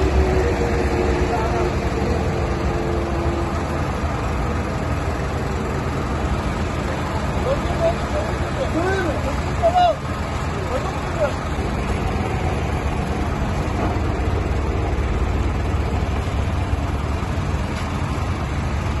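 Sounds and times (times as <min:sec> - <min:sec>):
truck engine rumbling: 0:00.0 - 0:19.0
people calling out: 0:07.5 - 0:10.1.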